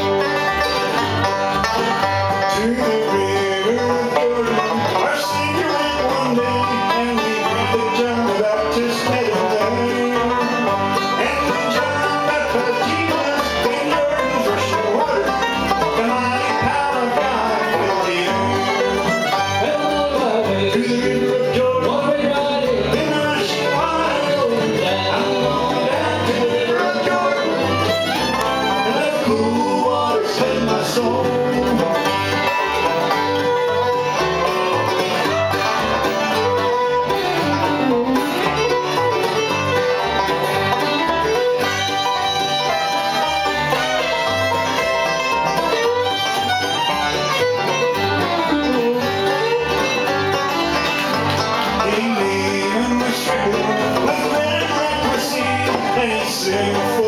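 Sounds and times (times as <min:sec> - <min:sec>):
bass pulsing: 0:00.0 - 0:57.0
bluegrass band playing: 0:00.0 - 0:57.0
fiddle lead: 0:00.0 - 0:57.0.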